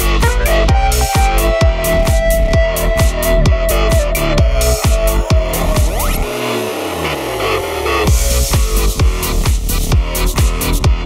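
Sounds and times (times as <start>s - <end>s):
rising sweep: 0.0s - 9.0s
deep bass tone gliding downward: 0.0s - 11.0s
electronic dance music: 0.0s - 11.0s.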